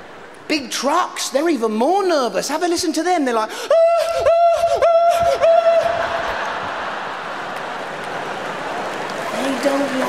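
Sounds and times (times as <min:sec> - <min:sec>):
crowd laughter: 0:05.8 - 0:09.0
applause: 0:06.3 - 0:10.0.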